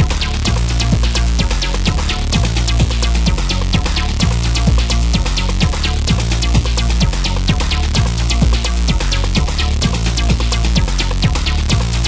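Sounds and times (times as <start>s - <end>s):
house dance music: 0.0s - 12.0s.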